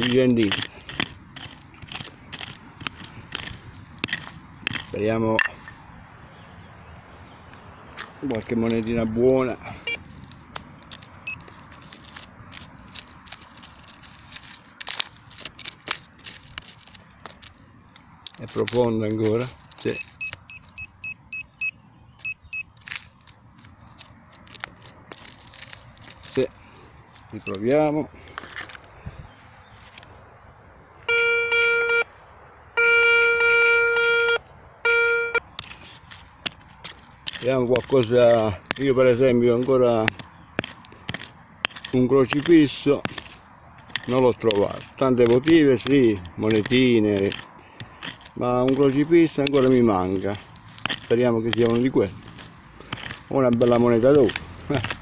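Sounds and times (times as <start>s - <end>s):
probe scraping through stony soil: 0.0s - 5.8s, 8.1s - 21.0s, 22.2s - 30.1s, 35.5s - 55.0s
metal detector electronic tone: 5.4s - 5.8s, 19.9s - 22.7s, 31.1s - 32.1s, 32.8s - 35.4s.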